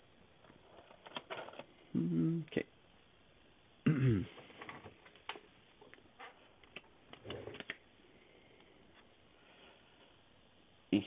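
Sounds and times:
hum of voice: 0:01.9 - 0:02.5.

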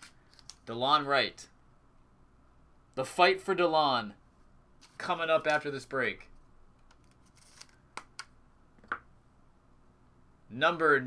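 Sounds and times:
cards and plastic holders clicking: 0:06.8 - 0:09.0.

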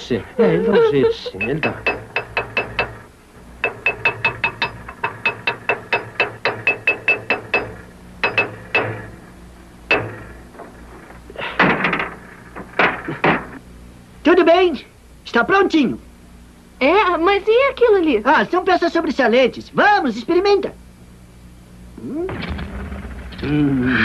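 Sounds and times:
hammer banging on sheet metal: 0:01.6 - 0:09.2, 0:09.9 - 0:10.7, 0:11.6 - 0:13.6
metal clatter: 0:09.9 - 0:13.6.

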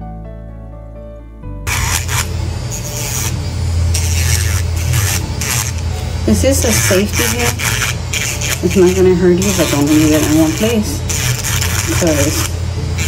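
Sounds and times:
soft background music: 0:00.0 - 0:13.0
nail drill sanding: 0:01.7 - 0:13.0.

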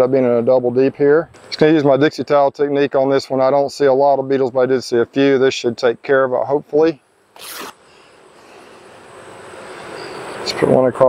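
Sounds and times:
faint hiss: 0:00.1 - 0:11.0
cloth sheet ripping rustle: 0:07.4 - 0:07.8.

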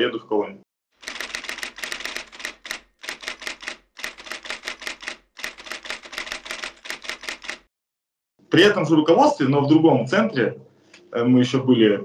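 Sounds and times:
typewriter keystroke clicks: 0:01.0 - 0:07.6.

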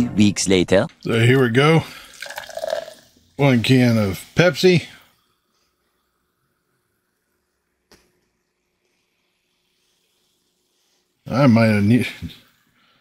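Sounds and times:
cola pouring and fizzing: 0:01.0 - 0:04.2.

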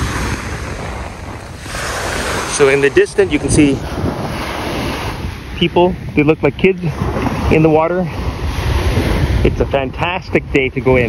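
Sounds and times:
small waves breaking on sand: 0:00.0 - 0:06.1, 0:06.8 - 0:09.5
wind buffeting microphone: 0:00.0 - 0:11.0.

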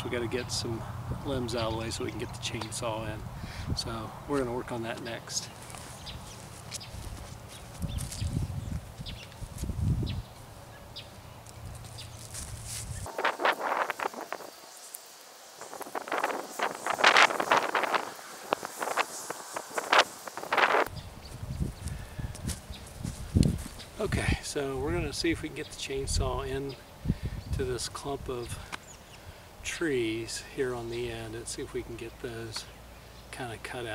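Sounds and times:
brush rustling: 0:00.0 - 0:24.1
footsteps on dry ground: 0:04.3 - 0:14.6, 0:15.6 - 0:24.0.

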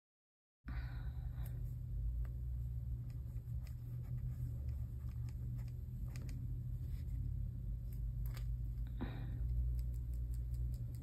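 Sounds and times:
low steady hum: 0:00.7 - 0:11.0.

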